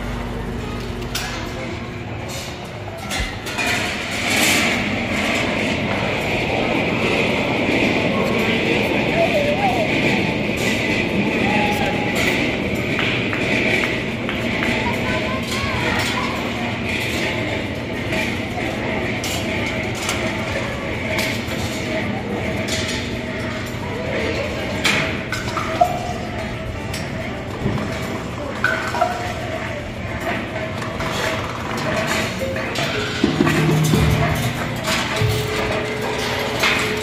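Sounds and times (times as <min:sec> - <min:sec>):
crowd chatter: 0:00.0 - 0:37.0
metal balls rolling and clinking: 0:03.5 - 0:37.0.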